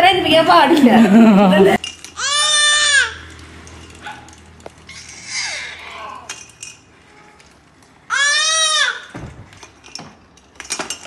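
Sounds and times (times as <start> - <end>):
toddler squealing: 2.2 - 3.3, 4.9 - 6.3, 8.1 - 9.1.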